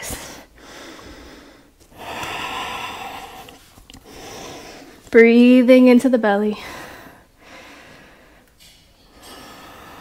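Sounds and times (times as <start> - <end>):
woman breathing deeply: 0.0 - 5.1, 6.6 - 10.0.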